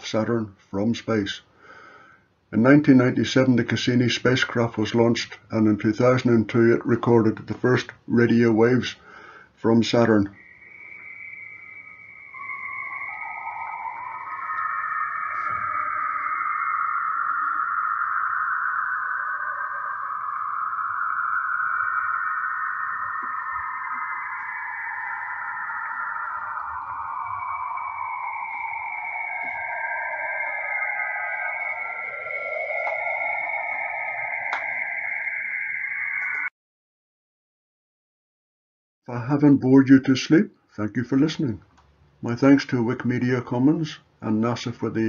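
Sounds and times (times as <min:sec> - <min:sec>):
eerie hissing drifting tones: 0:10.0 - 0:36.5.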